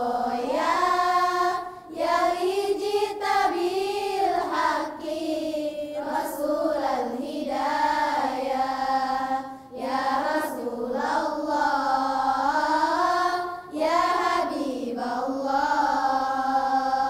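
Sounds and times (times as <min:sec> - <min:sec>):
girls' choir singing in unison: 0:00.0 - 0:17.0.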